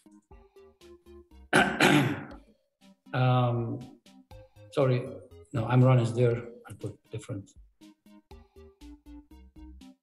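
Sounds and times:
faint music: 0.0 - 7.6
man clearing his throat: 1.5 - 2.3.

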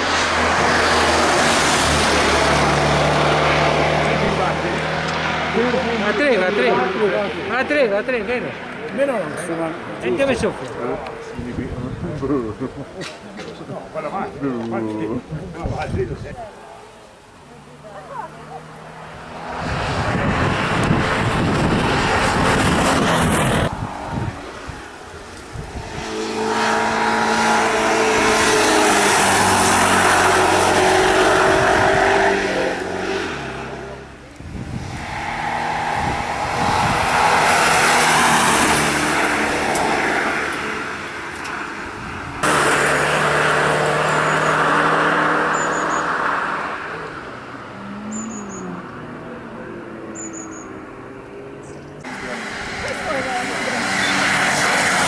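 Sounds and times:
car engine revving: 0.0 - 11.7, 17.6 - 55.0.

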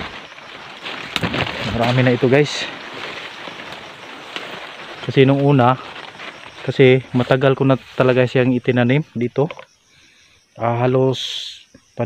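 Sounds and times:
twigs snapping: 0.0 - 5.1
leaves and brush rustling: 0.0 - 11.5.

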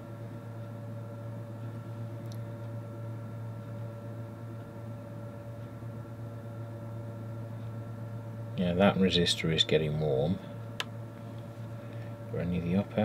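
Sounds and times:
power transformer mains hum: 0.0 - 13.0.

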